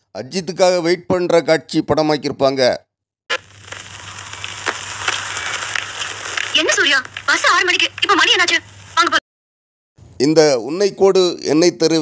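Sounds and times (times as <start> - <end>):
outdoor ambience hiss: 3.3 - 9.2
low steady hum: 3.4 - 9.2.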